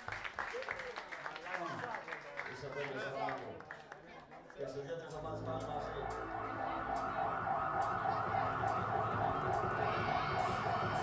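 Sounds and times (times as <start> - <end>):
music: 5.1 - 11.0
siren warbling: 5.3 - 11.0.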